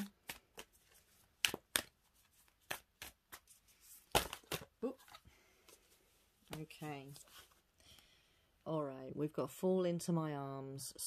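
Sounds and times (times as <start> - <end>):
cards being shuffled: 0.0 - 7.6.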